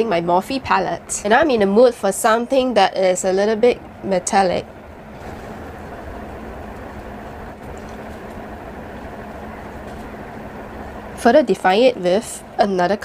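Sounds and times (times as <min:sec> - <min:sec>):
low rumbling noise: 0:00.0 - 0:13.0.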